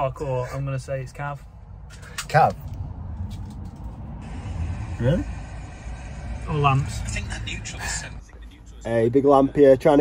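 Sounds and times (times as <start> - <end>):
engine and road noise rumble: 0.0 - 10.0.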